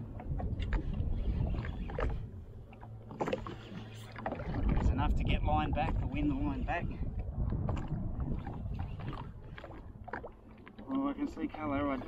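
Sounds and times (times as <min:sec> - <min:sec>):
water and wind around a hull: 0:00.0 - 0:12.0.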